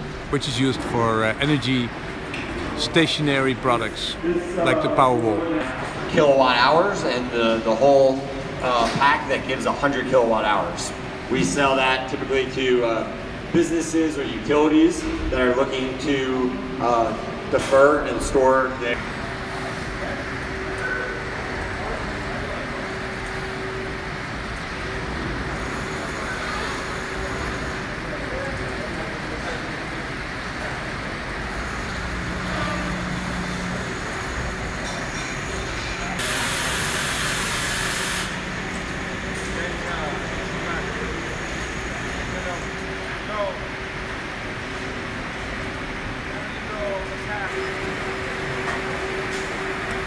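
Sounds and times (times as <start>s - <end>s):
factory machinery humming: 0.0s - 50.0s
loud hiss: 36.2s - 38.5s.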